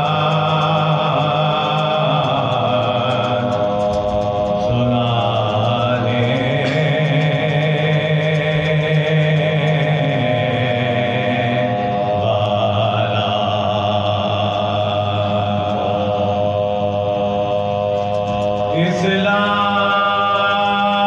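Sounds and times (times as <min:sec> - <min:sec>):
men chanting slow elegy: 0:00.0 - 0:21.0.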